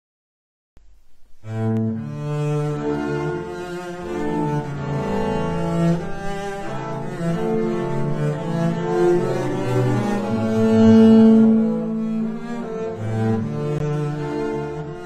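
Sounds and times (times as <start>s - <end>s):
bowed double basses: 0.8s - 15.0s.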